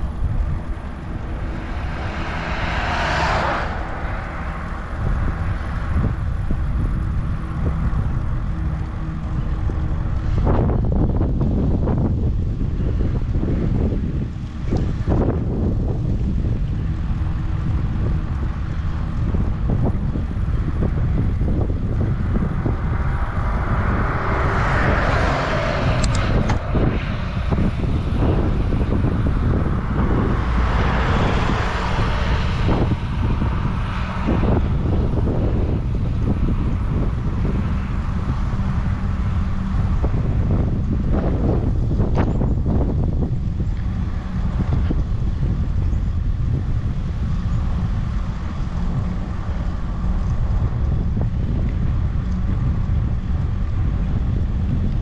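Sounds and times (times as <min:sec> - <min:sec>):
car passing with a hiss: 0:00.0 - 0:54.8
wind buffeting microphone: 0:00.0 - 0:55.0.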